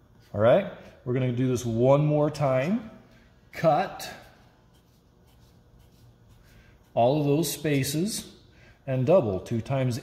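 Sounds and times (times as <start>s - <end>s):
marker drawing on paper: 4.0s - 7.9s.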